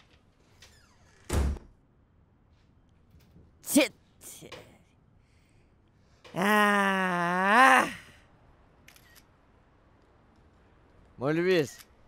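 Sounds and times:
door shutting thud: 1.2s - 1.7s.

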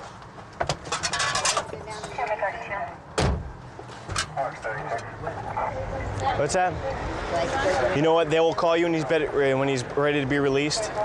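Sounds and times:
heavy thump: 3.2s - 3.5s
faint voices: 4.2s - 11.0s.

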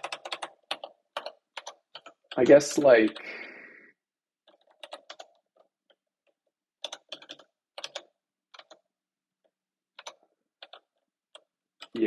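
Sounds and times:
computer keyboard keystrokes: 0.0s - 2.5s, 4.4s - 6.0s, 6.8s - 8.8s, 10.0s - 12.0s.

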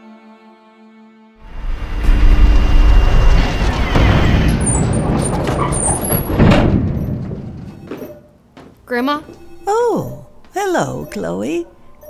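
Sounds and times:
music: 0.0s - 4.4s, 8.9s - 12.0s
deep rumbling rushing effect: 1.4s - 7.6s.

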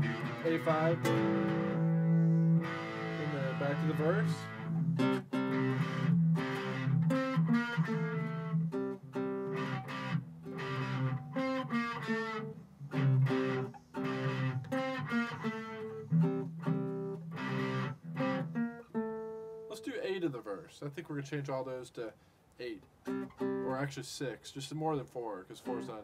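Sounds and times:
electric guitar playing chords: 0.0s - 19.7s, 23.1s - 23.7s
acoustic guitar strumming chords: 0.0s - 19.9s, 23.1s - 23.8s.

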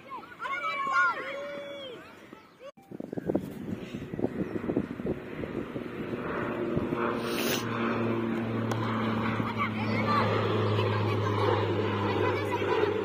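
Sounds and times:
low engine hum: 3.9s - 13.0s.

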